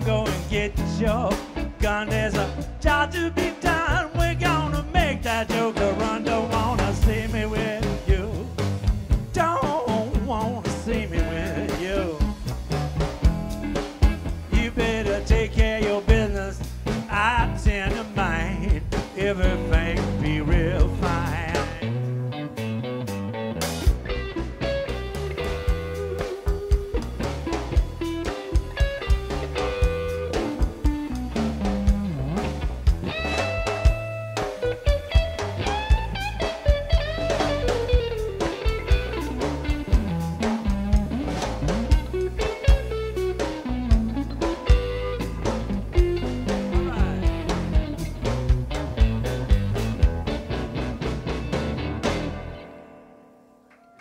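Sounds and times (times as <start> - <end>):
drum kit steady beat: 0.0 - 22.7, 23.6 - 52.5
electric bass: 0.0 - 53.2
electric guitar lead lines: 0.0 - 54.0.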